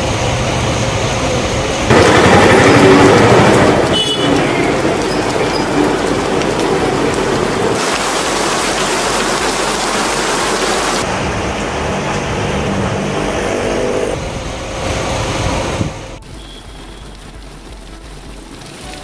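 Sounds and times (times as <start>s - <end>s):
heavy rain pouring: 0.0s - 19.0s
low rumble of traffic: 0.0s - 19.0s.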